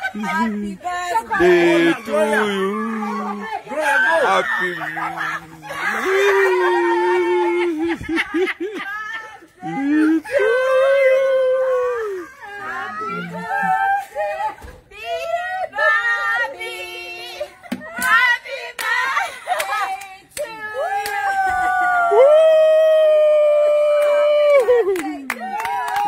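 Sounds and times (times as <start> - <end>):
voices: 0.0 - 26.0
long high-pitched vocal cry: 1.3 - 8.0, 9.3 - 14.6.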